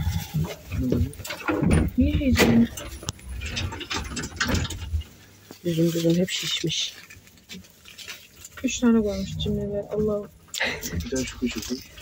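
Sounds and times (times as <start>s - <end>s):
people talking indistinctly: 8.6s - 11.9s.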